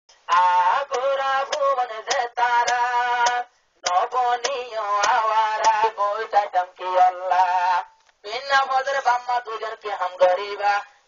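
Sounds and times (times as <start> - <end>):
man singing: 0.2 - 11.0
sharp percussive ticks: 0.9 - 5.8.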